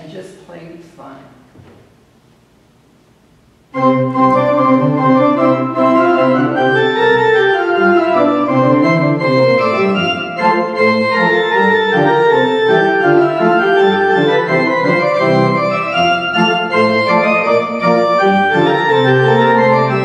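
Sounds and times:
church organ playing chords: 3.7s - 20.0s.

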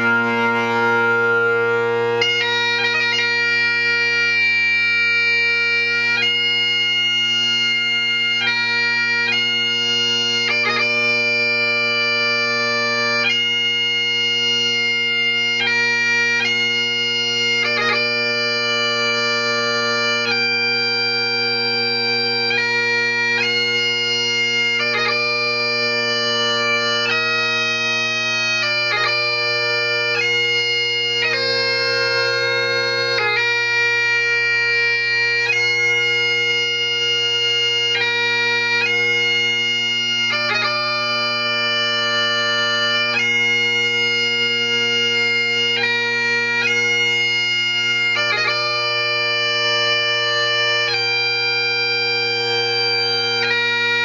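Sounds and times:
bagpipe chanter melody: 0.0s - 54.0s
bagpipe drones: 0.0s - 54.0s.

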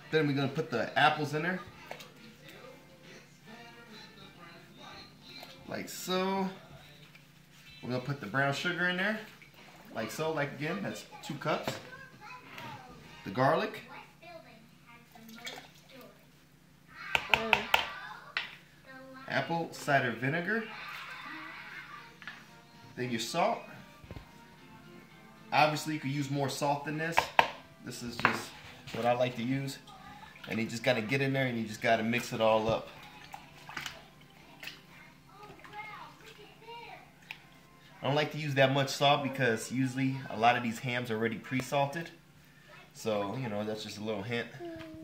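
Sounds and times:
child's voice: 11.0s - 13.2s, 13.8s - 16.3s, 16.9s - 19.3s, 20.6s - 22.4s, 29.8s - 30.5s, 32.9s - 37.2s, 42.7s - 43.0s, 44.5s - 45.0s
children's voices: 16.9s - 19.2s, 34.1s - 37.2s
brine sloshing in a bucket: 32.0s - 36.5s
small splashes: 32.8s - 36.6s.

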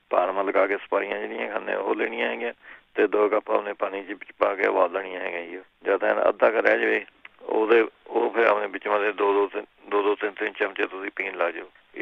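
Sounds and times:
person talking: 0.1s - 12.0s.

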